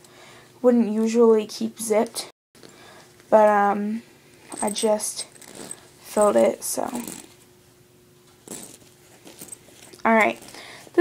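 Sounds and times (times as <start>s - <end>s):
fabric bag rustling: 4.4s - 7.4s, 8.4s - 11.0s.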